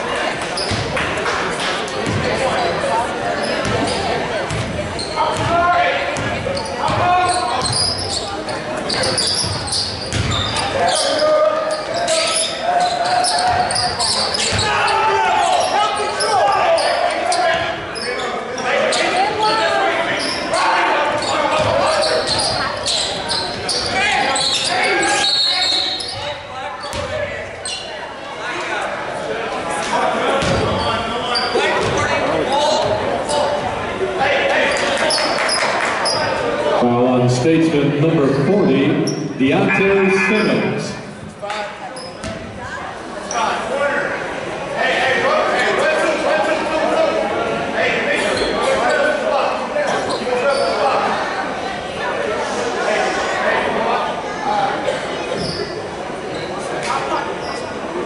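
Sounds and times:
people calling out and talking: 0.0s - 58.0s.

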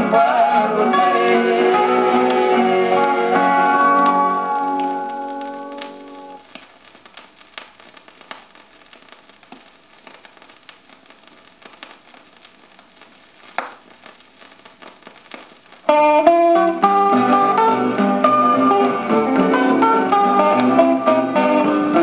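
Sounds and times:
gospel song with plucked guitar: 0.0s - 6.4s, 15.9s - 22.0s
vinyl crackle and clicks: 0.0s - 22.0s
vinyl pop: 0.0s - 22.0s.

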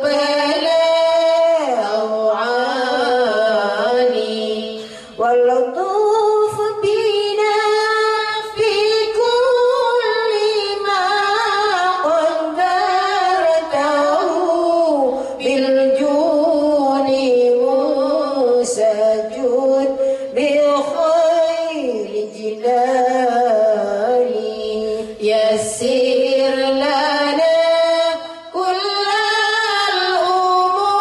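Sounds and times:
women singing: 0.0s - 31.0s.

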